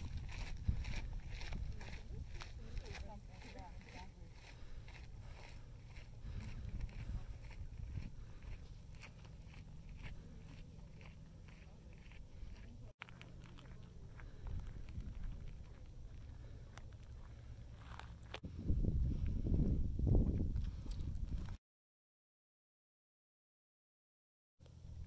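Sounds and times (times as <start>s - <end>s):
footsteps crunching on gravel: 0.0s - 18.4s
steady low rumble: 0.0s - 21.6s.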